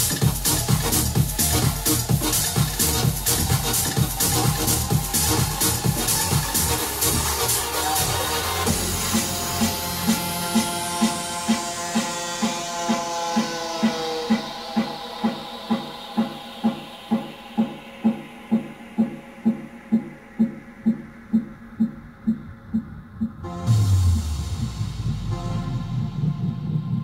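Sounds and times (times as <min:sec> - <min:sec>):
electronic dance music: 0:00.0 - 0:27.0.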